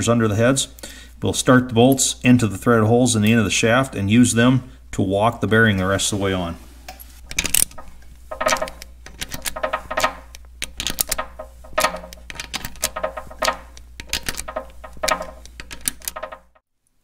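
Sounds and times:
socket ratchet clicking: 0:07.3 - 0:16.6.

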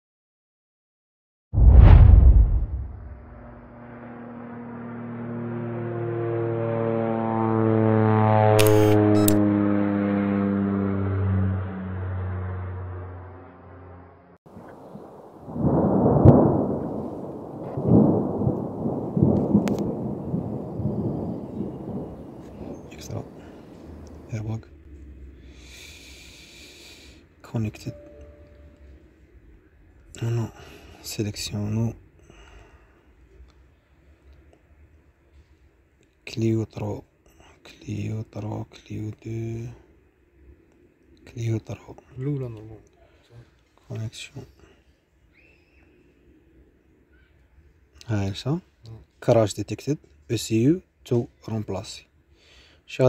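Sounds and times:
loud impact: 0:01.6 - 0:05.3
steady low hum: 0:01.6 - 0:06.2
engine drone: 0:02.2 - 0:14.4
sharp clicks: 0:08.6 - 0:09.4
faint high tone: 0:27.8 - 0:29.1.

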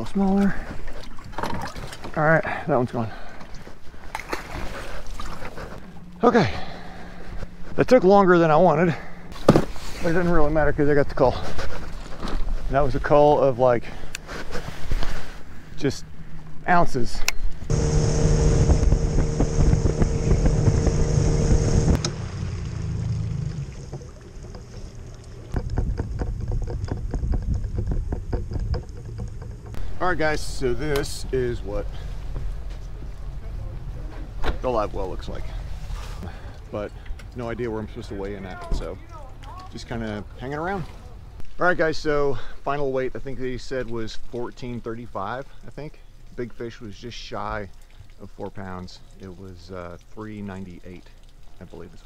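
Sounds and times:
handling noise on a boat: 0:00.0 - 0:16.6, 0:23.6 - 0:41.6
low rumble: 0:17.6 - 0:37.9
outboard motor idling: 0:17.7 - 0:41.3
boat rattling on trailer: 0:25.5 - 0:36.0.

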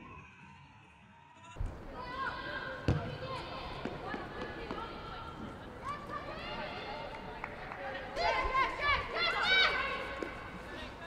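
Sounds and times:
ball being kicked: 0:02.8 - 0:04.2
women shouting and calling: 0:08.2 - 0:10.9.

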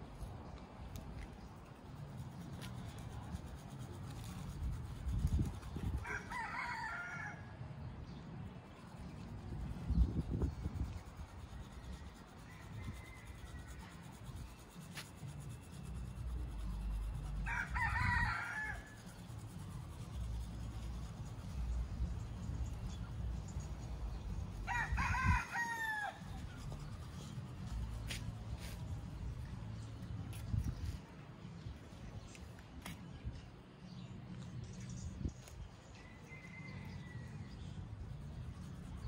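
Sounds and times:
rooster crowing: 0:06.0 - 0:07.6, 0:17.4 - 0:19.0, 0:24.6 - 0:26.4.

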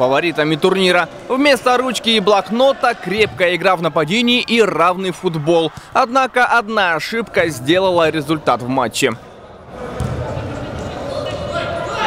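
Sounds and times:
players calling out: 0:00.0 - 0:12.0
steady din in echoing hall: 0:00.0 - 0:12.0
sharp ball kick: 0:10.0 - 0:10.2.

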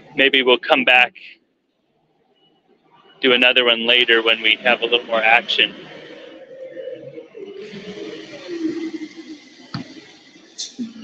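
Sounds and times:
low murmur in a large hall: 0:00.0 - 0:11.0.

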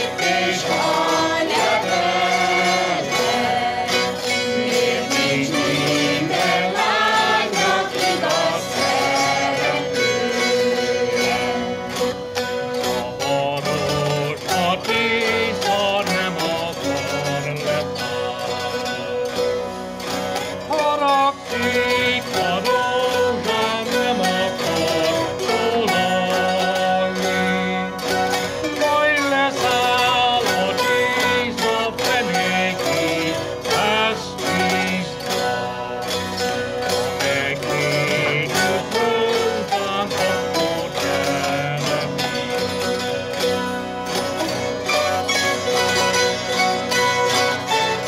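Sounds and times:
zithers strummed fast: 0:00.0 - 0:48.0.

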